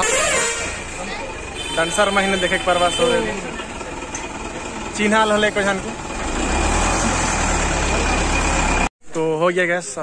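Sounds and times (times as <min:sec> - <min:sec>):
vehicle engine idling: 0:00.7 - 0:08.9
voices: 0:00.8 - 0:06.4.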